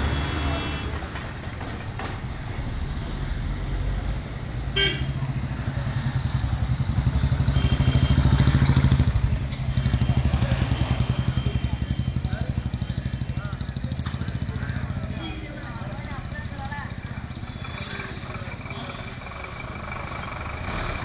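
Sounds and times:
passing street traffic: 0:00.0 - 0:21.0
vehicle engine running: 0:00.0 - 0:21.0.

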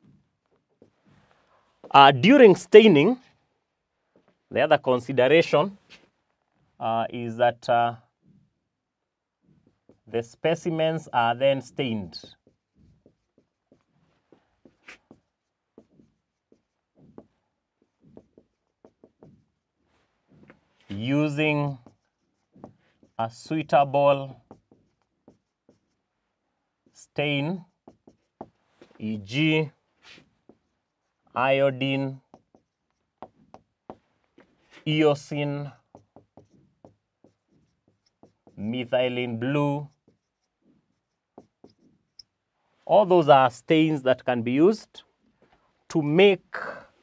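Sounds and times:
marker pen writing on whiteboard: 0:00.0 - 0:47.0.

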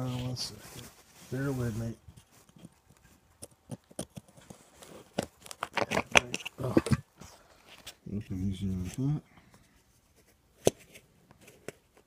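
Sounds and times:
metal tin clicking and scraping: 0:05.2 - 0:07.0.

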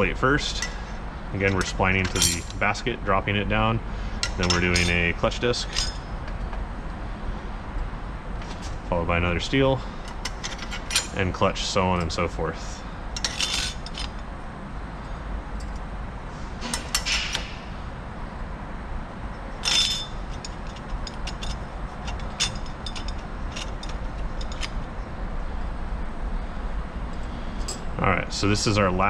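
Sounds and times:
metal clutch plates clinking: 0:00.0 - 0:02.8, 0:04.2 - 0:06.6, 0:08.4 - 0:08.9, 0:09.5 - 0:12.3, 0:13.1 - 0:14.3, 0:15.0 - 0:15.9, 0:16.6 - 0:17.8, 0:19.3 - 0:25.0, 0:27.1 - 0:28.0
low steady hum: 0:00.0 - 0:29.0.

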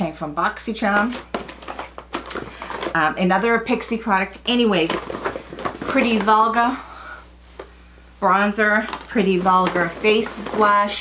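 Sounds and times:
packaging handled in a bag: 0:00.9 - 0:03.0, 0:04.8 - 0:06.6, 0:08.8 - 0:11.0.

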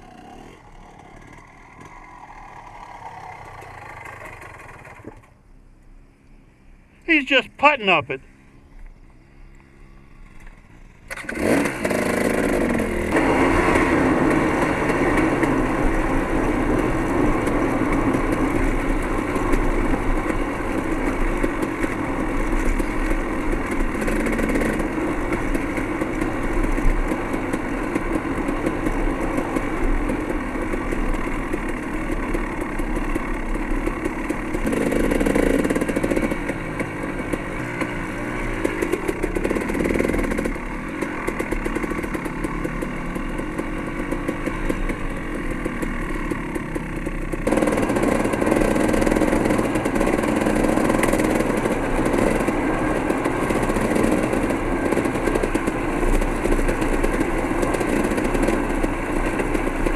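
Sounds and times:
dirt bike engine running: 0:00.0 - 0:05.4, 0:06.9 - 0:59.9.

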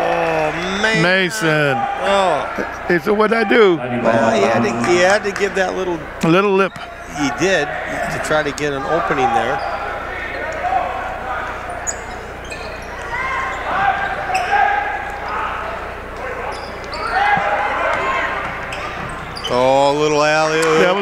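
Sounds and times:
voices calling out: 0:00.0 - 0:21.0.

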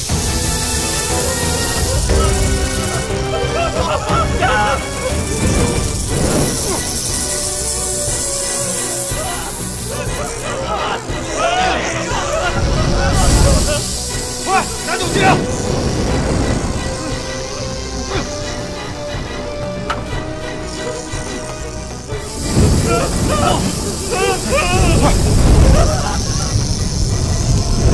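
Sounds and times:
tense film score: 0:00.0 - 0:27.9
people shouting and crying: 0:01.1 - 0:15.7, 0:22.4 - 0:26.9.

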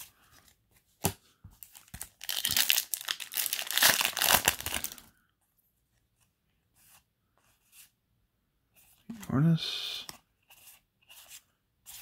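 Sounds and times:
foil wrapper crinkling: 0:01.8 - 0:05.0.

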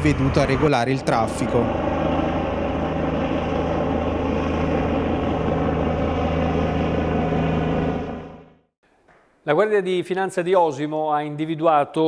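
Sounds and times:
helicopter rotor and engine: 0:00.0 - 0:08.8.

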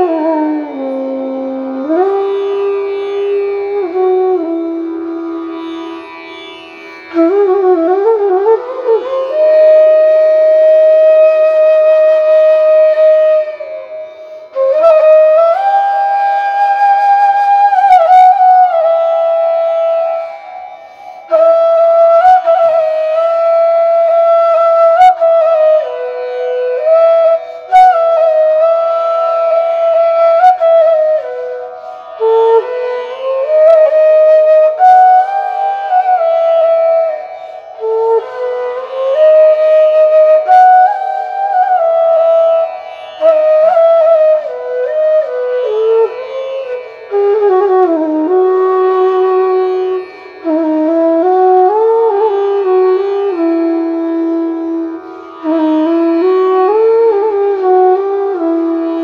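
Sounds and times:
bamboo flute melody: 0:00.0 - 0:59.0.

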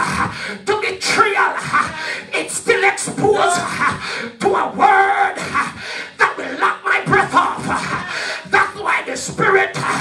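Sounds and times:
man shouting into a microphone: 0:00.6 - 0:05.6, 0:06.2 - 0:10.0.

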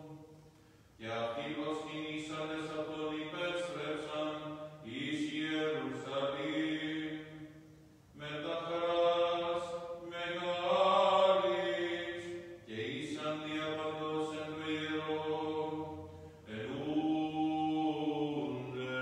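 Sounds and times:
man chanting unaccompanied: 0:01.0 - 0:07.5, 0:08.1 - 0:19.0.

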